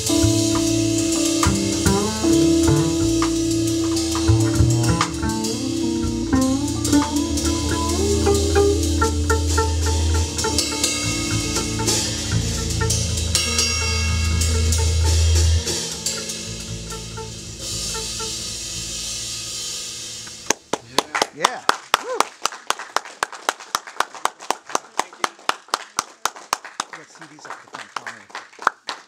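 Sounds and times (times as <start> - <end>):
held low bass note: 0.0 - 20.5
jazz trio playing: 0.0 - 20.5
small audience clapping: 3.9 - 5.5, 20.4 - 29.0.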